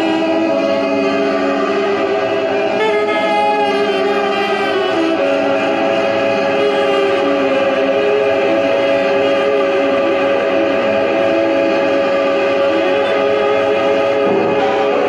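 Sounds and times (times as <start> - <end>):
saxophone long held note: 0.0 - 15.0.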